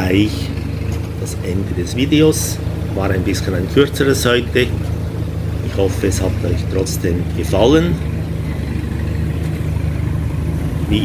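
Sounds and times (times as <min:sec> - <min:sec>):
scooter engine idling: 0:00.0 - 0:11.0
street traffic: 0:00.0 - 0:11.0.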